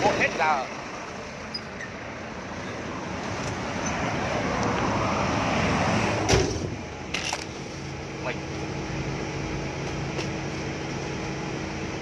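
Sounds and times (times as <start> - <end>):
vehicle engine and road noise: 0.0 - 12.0
sharp thump: 6.2 - 6.8.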